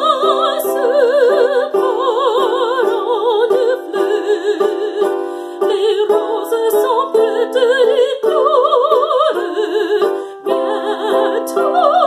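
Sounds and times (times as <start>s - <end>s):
instrumental accompaniment: 0.0s - 12.0s
woman singing classical song: 0.0s - 12.0s.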